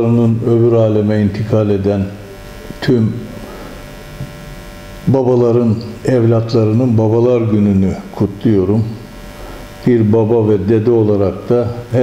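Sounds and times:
man speaking: 0.0 - 3.6, 5.0 - 9.1, 9.8 - 12.0
faint electrical hum: 0.0 - 12.0.

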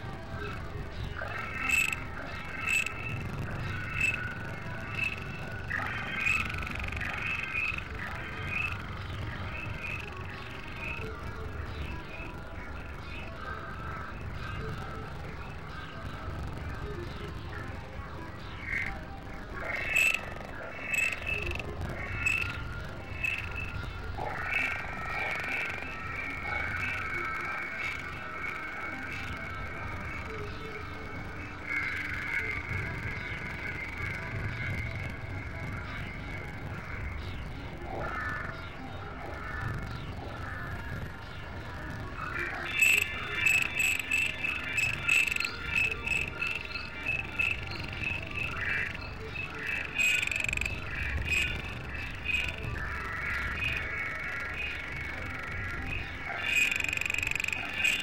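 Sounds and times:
experimental electronic music: 0.0 - 58.0.

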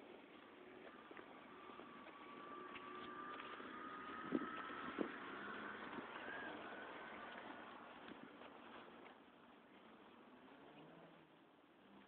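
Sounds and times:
distant vehicle passing: 0.6 - 8.9.

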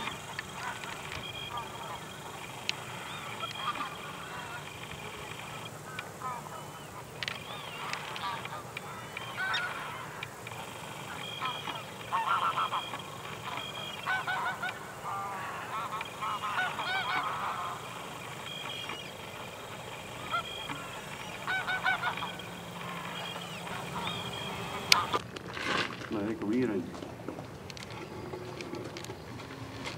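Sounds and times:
geese honking: 0.0 - 25.2.

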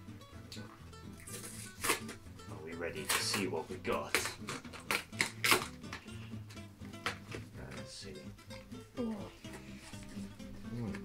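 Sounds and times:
background music with bass line: 0.0 - 11.0.

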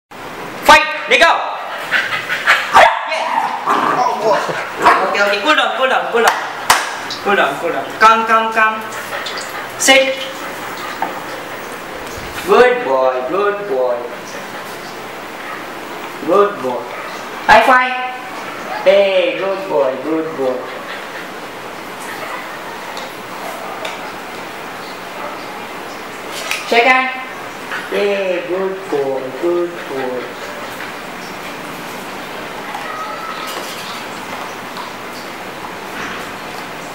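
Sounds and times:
steady background hiss: 0.2 - 36.9
person speaking: 7.2 - 10.5, 26.6 - 30.7.

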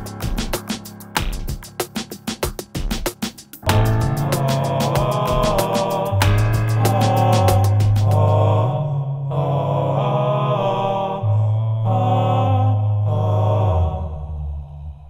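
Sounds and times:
male voices singing a cappella: 3.7 - 15.0.

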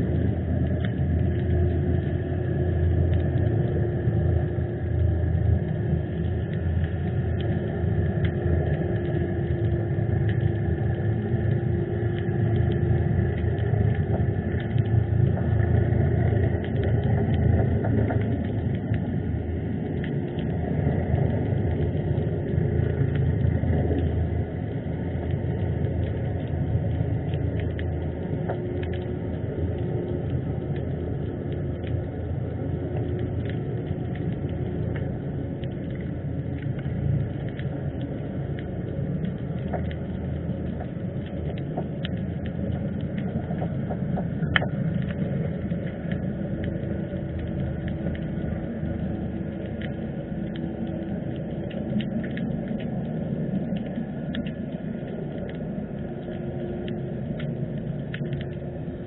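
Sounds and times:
faint constant hum: 0.0 - 59.0
small clicks: 0.0 - 59.0
underwater low rumble: 0.0 - 59.0.

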